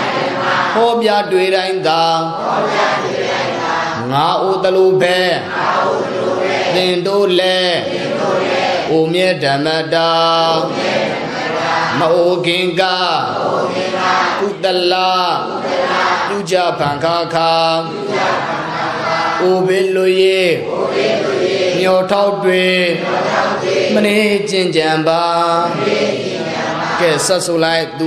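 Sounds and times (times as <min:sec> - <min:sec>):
man chanting: 0:00.7 - 0:02.5, 0:04.0 - 0:05.6, 0:06.7 - 0:08.2, 0:08.8 - 0:10.8, 0:11.9 - 0:13.5, 0:14.4 - 0:15.6, 0:16.2 - 0:18.3, 0:19.3 - 0:20.7, 0:21.6 - 0:26.0, 0:27.0 - 0:28.0.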